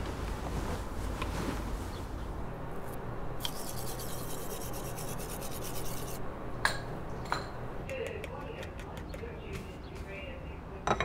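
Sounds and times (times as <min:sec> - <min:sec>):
toothbrush scrubbing teeth: 0:03.4 - 0:06.2.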